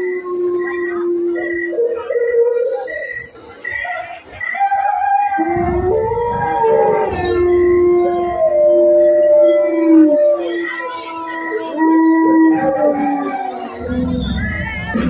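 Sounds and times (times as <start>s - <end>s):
long howling over loudspeakers: 0.0s - 15.0s.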